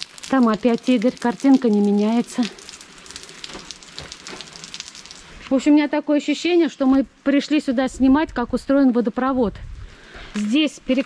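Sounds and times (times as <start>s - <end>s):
water trickling over rocks: 0.0s - 5.5s.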